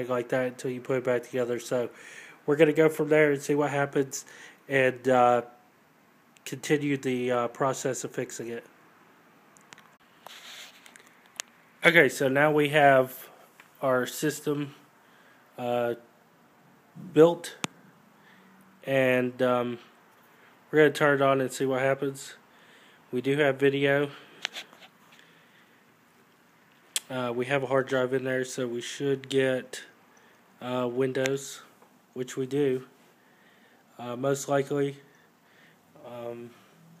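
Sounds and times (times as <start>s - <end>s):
soft rustle: 9.9s - 11.5s, 24.3s - 26.9s.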